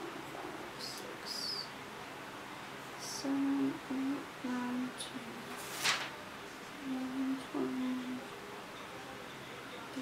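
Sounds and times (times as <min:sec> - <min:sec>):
woman humming: 0:06.8 - 0:08.2.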